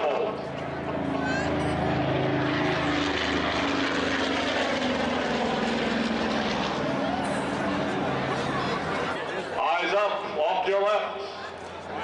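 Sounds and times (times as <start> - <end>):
aircraft engine running: 0.0 - 12.0
people talking: 6.8 - 12.0.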